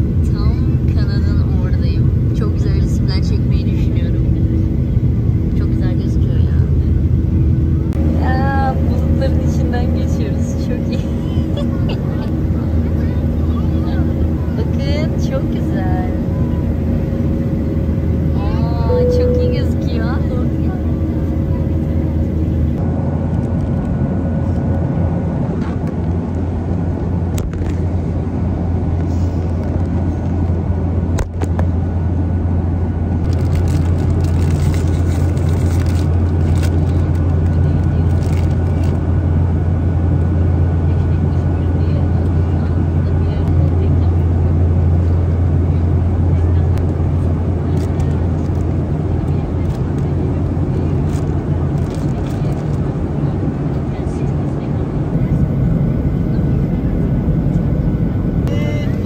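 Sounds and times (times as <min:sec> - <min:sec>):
jet cabin engine drone: 0:00.0 - 0:59.0.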